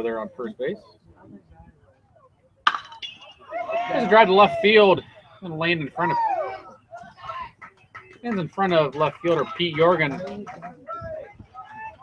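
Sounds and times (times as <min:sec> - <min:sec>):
metal bat hitting ball: 0:02.7 - 0:03.4.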